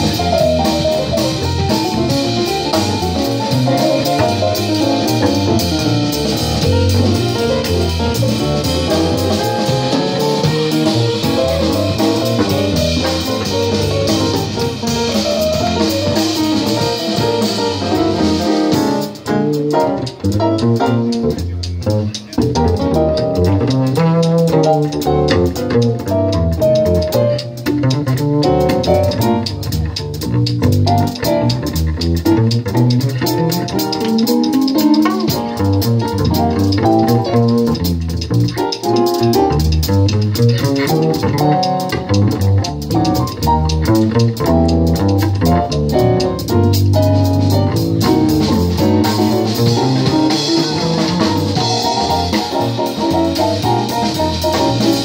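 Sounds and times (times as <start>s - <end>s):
drum kit cymbals: 0.0s - 55.0s
piano: 0.0s - 55.0s
plucked double bass: 0.0s - 55.0s.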